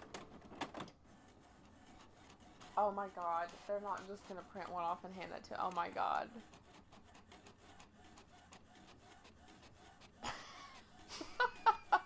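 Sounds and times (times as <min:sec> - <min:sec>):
printer print head ticking: 0:01.2 - 0:10.2.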